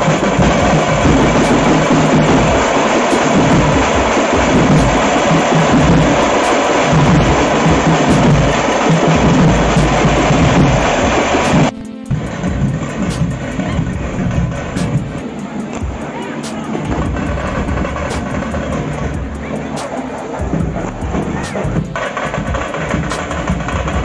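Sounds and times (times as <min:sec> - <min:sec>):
bass drum: 0:00.0 - 0:24.0
side drums: 0:00.0 - 0:24.0.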